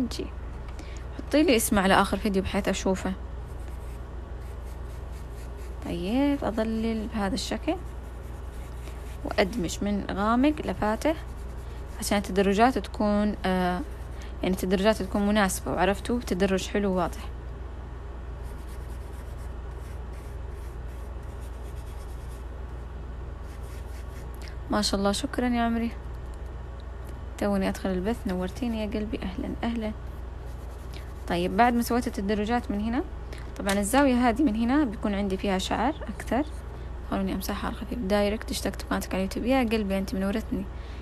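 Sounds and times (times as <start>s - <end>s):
steady low hum: 0.0s - 41.0s
brush scrubbing on paper: 3.5s - 12.8s, 18.4s - 22.5s, 23.4s - 24.3s, 30.4s - 31.8s.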